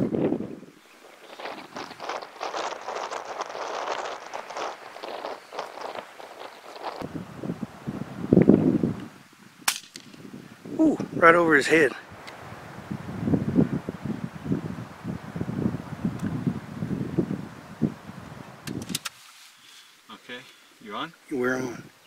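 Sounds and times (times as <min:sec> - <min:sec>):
rustling noise: 0:00.0 - 0:10.4, 0:15.9 - 0:20.0
air rifle shot: 0:09.7 - 0:10.2.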